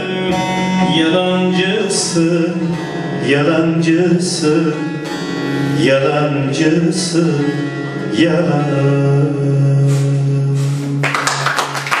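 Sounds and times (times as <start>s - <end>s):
long-necked lute: 0.0s - 11.0s
person singing folk song: 0.0s - 12.0s
hand clapping: 10.9s - 12.0s.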